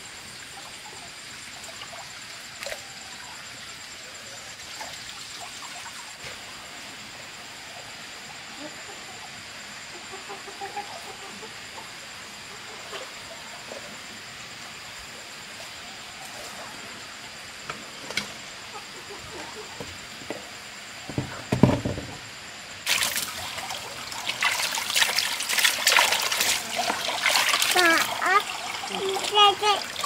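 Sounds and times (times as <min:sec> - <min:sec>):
water splashing into plastic basin: 0:22.8 - 0:30.0.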